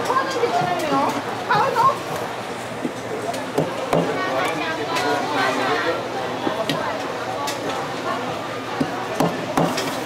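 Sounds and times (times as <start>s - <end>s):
cleaver chopping on cutting board: 8.8s - 9.9s.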